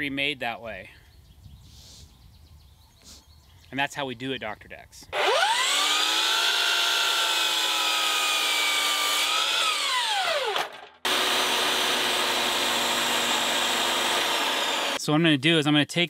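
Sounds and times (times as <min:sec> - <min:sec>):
miter saw motor whine: 0:05.2 - 0:15.0
table saw ripping wood: 0:05.2 - 0:15.0.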